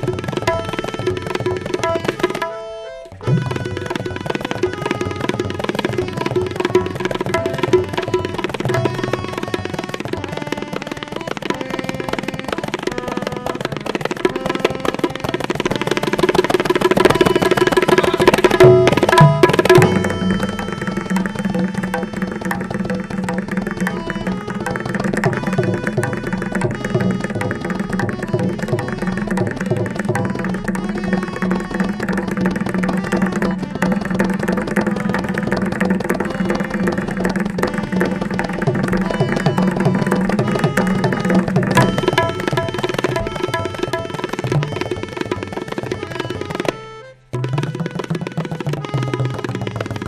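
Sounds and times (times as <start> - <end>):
tabla rapid strokes: 0.0 - 50.0
steady held note: 17.8 - 24.8
steady ringing pitch: 17.8 - 26.4.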